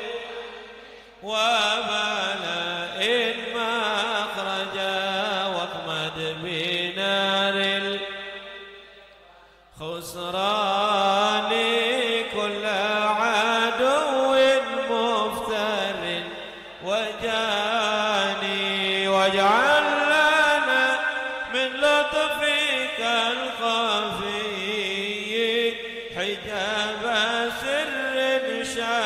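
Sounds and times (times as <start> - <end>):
man chanting into a microphone: 0.0 - 29.0.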